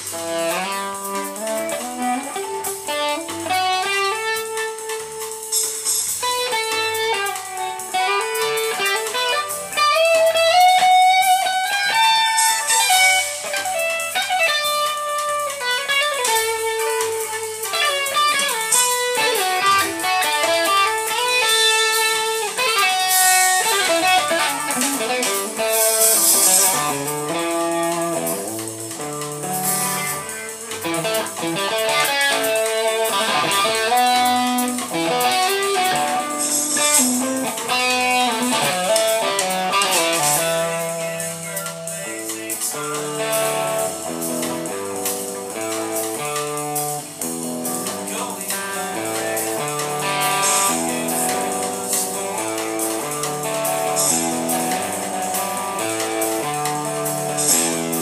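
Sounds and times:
bass and drums backing: 0.0 - 58.0
electric guitar lead: 0.0 - 58.0.

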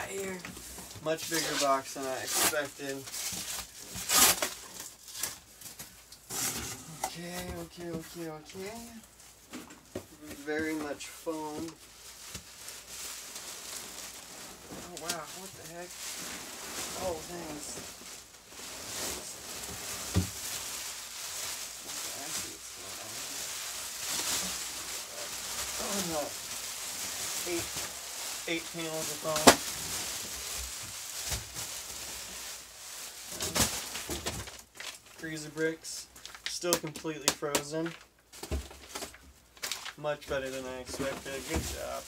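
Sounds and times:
foam sheets rubbing and rustling: 0.0 - 9.5, 10.1 - 34.8, 39.6 - 42.0
packing tape ripping: 1.4 - 5.4.

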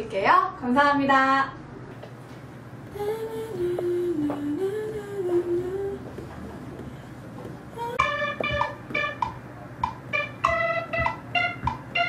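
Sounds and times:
woman humming: 2.9 - 8.2
faint taps: 6.1 - 11.8.

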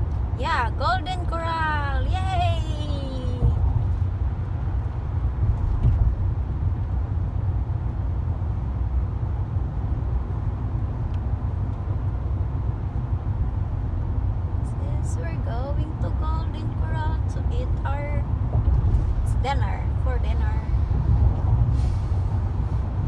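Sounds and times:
road and engine rumble in car: 0.0 - 23.0.

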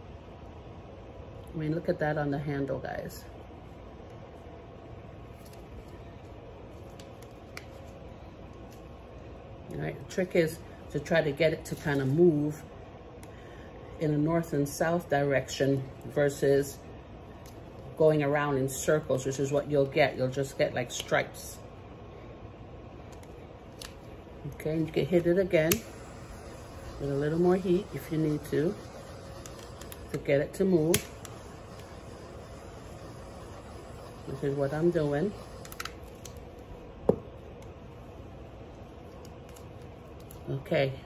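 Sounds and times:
low background hum: 0.0 - 41.0.

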